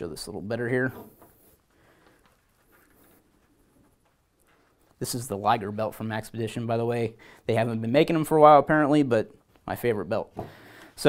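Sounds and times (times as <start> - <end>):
belt rustling: 1.0 - 5.8.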